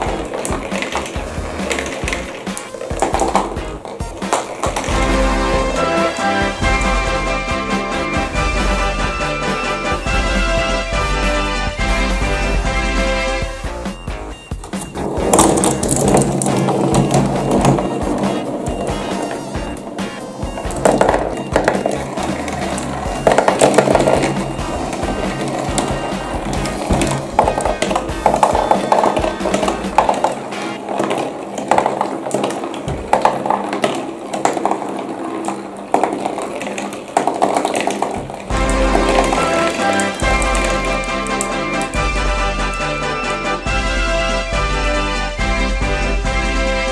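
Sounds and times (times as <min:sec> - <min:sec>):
marbles rolling on cardboard tracks: 0:00.0 - 0:43.7
background music: 0:00.0 - 0:46.9.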